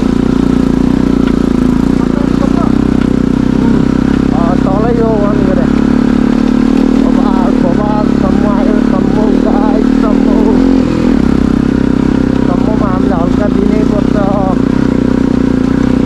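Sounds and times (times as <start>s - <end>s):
motorcycle engine running: 0.0s - 16.0s
voice with wavering pitch: 2.0s - 2.8s, 3.5s - 5.8s, 7.0s - 10.8s, 12.5s - 14.6s.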